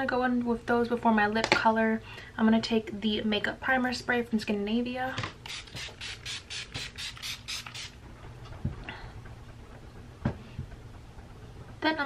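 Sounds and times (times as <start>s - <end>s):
spray bottle hissing sprays: 5.4s - 8.0s.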